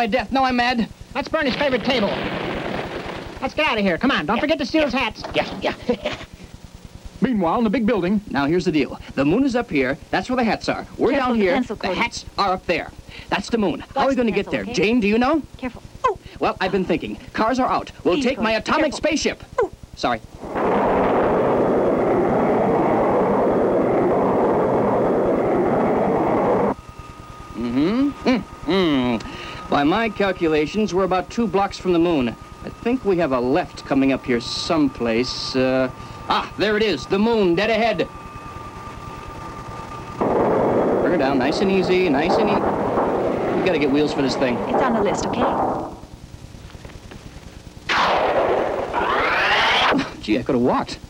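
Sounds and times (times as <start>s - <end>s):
faint tape crackle: 1.2s - 7.2s, 37.2s - 49.1s
rocket engine rush: 1.4s - 4.1s, 20.3s - 46.5s, 47.8s - 50.2s.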